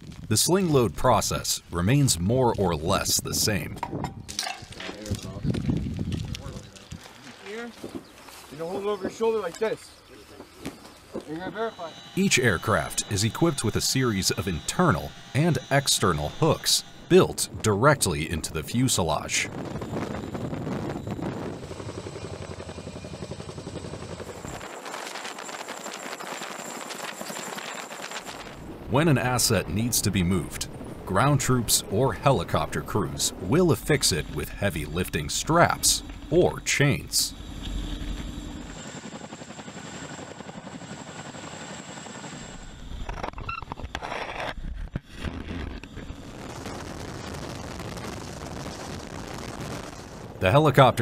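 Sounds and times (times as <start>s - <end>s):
helicopter rotors beating: 0.3s - 3.9s, 4.6s - 43.8s, 45.8s - 51.0s.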